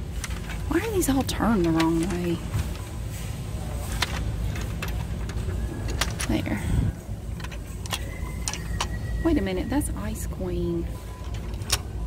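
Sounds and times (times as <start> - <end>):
low steady store hum: 0.0 - 12.0.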